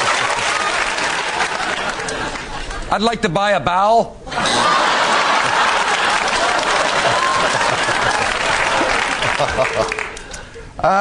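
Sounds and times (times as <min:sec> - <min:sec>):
audience applauding: 0:00.0 - 0:02.8, 0:04.5 - 0:10.5.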